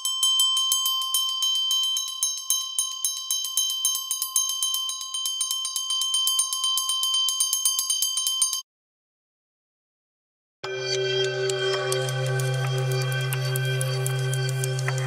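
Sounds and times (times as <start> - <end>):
bell struck in rapid tremolo: 0.0 - 8.6.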